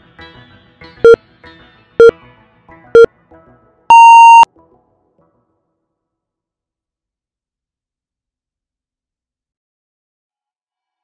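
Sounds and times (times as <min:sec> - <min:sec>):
longer higher beep: 0:03.9 - 0:04.5
short low beep: 0:03.9 - 0:04.5.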